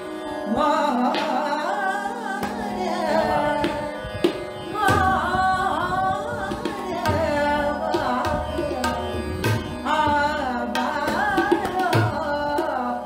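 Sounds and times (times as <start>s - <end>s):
steady held drone: 0.0s - 12.2s
woman singing: 0.4s - 13.0s
tabla strokes: 1.0s - 1.6s, 2.3s - 13.0s.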